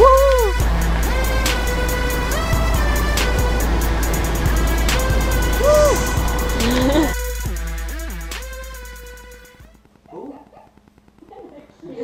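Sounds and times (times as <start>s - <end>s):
swooping sliding note: 0.0s - 9.7s
electronic music with steady beat: 0.0s - 12.0s.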